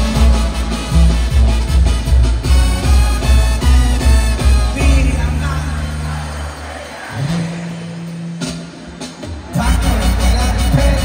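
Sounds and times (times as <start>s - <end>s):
live band held low note: 0.0s - 11.0s.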